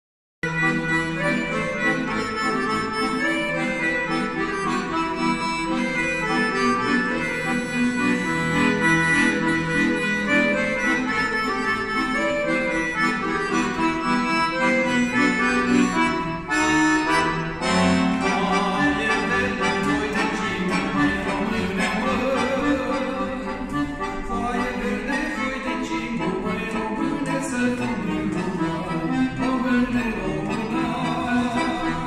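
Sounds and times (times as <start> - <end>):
accordion melody: 0.4 - 32.0.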